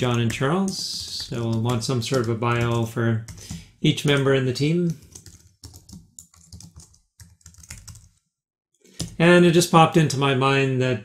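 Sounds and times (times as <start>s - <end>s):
computer keyboard typing: 0.0s - 8.2s, 9.0s - 9.2s.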